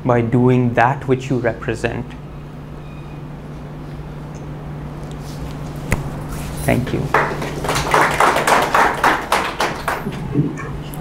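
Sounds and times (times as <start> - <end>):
audience clapping: 6.9 - 10.7.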